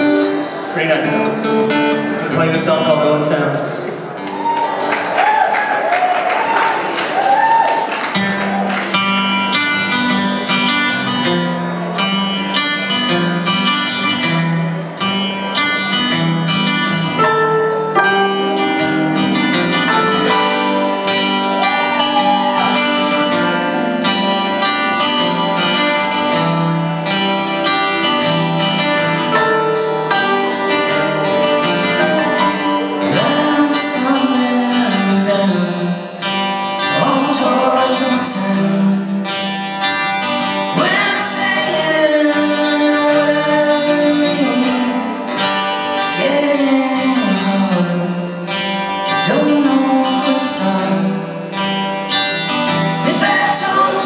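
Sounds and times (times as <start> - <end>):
guitars: 0.0 - 54.0
lead singer singing: 31.9 - 39.5, 40.6 - 51.7, 52.9 - 54.0.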